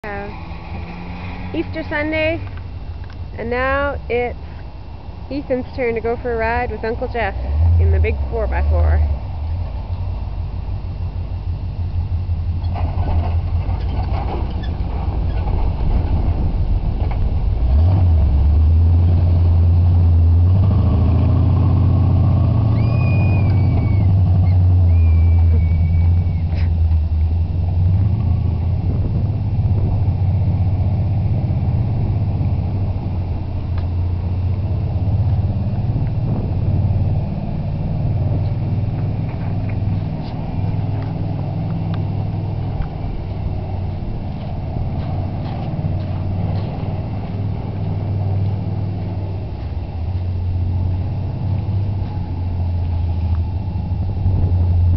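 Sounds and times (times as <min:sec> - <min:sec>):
truck engine rumbling: 0:00.0 - 0:54.9.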